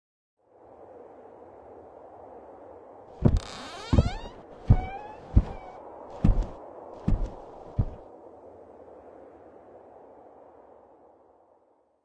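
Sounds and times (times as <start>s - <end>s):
heavy thumps: 3.2s - 8.0s.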